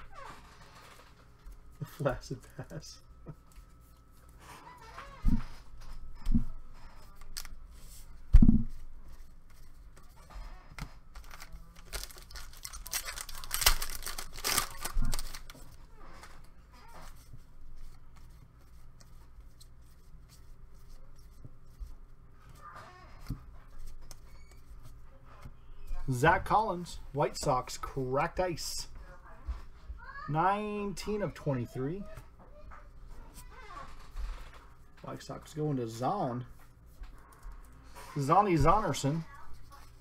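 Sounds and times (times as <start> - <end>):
cards rustling: 6.3 - 8.2, 10.8 - 22.0
foil pack ripping and crinkling: 10.4 - 17.1.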